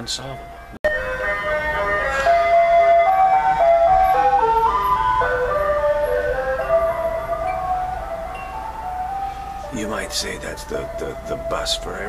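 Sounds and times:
tinkling jingle melody: 0:04.7 - 0:12.0.

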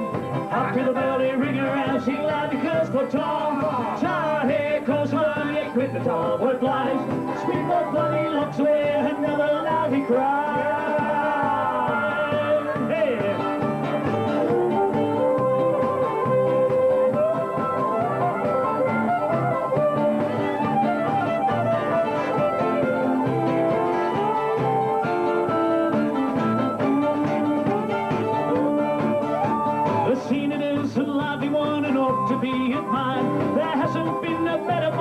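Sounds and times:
drums: 0:00.0 - 0:35.0
strummed guitars: 0:00.0 - 0:35.0
lead melody: 0:05.2 - 0:35.0.

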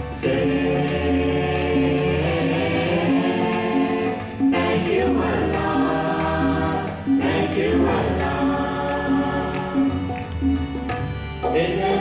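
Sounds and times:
choir singing in unison: 0:00.0 - 0:10.1
instrumental accompaniment: 0:00.0 - 0:12.0.

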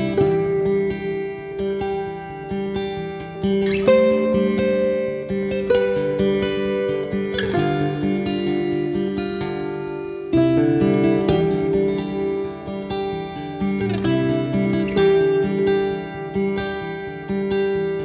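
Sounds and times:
plucked guitar music: 0:00.0 - 0:18.0.

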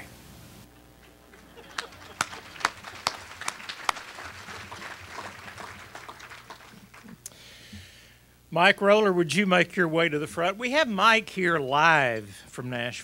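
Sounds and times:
hand clapping: 0:01.3 - 0:07.4.

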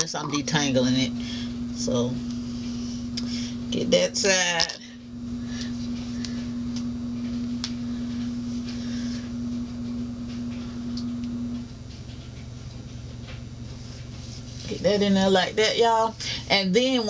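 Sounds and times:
washing machine hum: 0:00.0 - 0:17.0.

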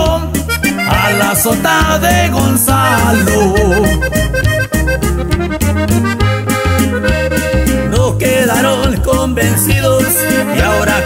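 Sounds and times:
pulsing bass line: 0:00.0 - 0:11.0
button accordion run: 0:00.5 - 0:02.0, 0:02.6 - 0:08.4.

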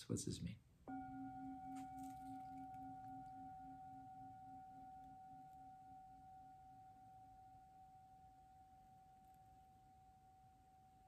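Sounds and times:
singing bowl ringing: 0:00.9 - 0:11.0.

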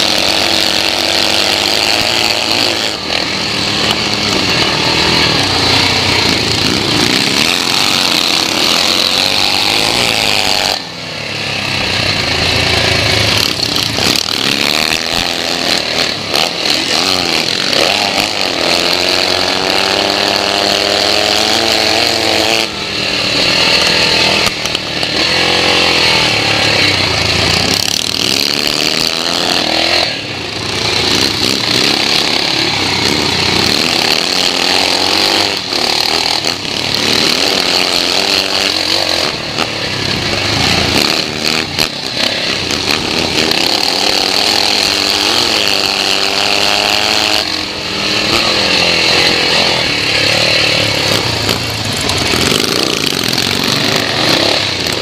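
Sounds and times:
motorcycle engine revving: 0:00.0 - 0:55.0.

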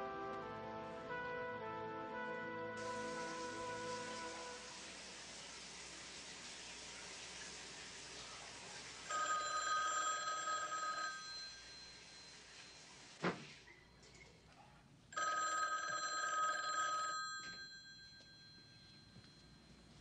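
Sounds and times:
telephone ringing: 0:09.1 - 0:13.0, 0:15.2 - 0:19.8.

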